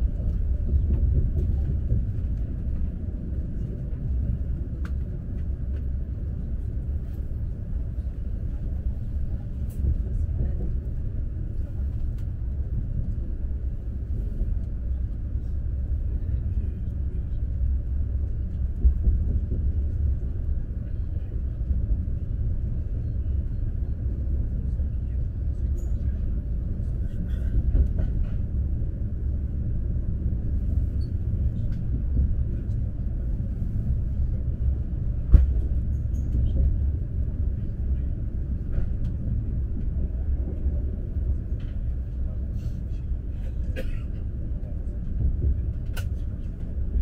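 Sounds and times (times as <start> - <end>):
train rumble inside cabin: 0.0 - 47.0.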